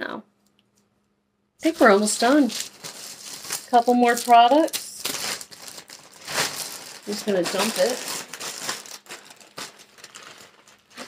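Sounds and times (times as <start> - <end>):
plastic bag rustling: 1.6 - 11.0.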